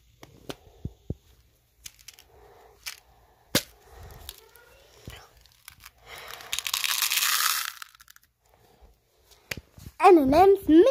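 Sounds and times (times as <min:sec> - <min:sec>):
candy pieces rattling into plastic cup: 0:01.8 - 0:03.0, 0:03.6 - 0:08.3.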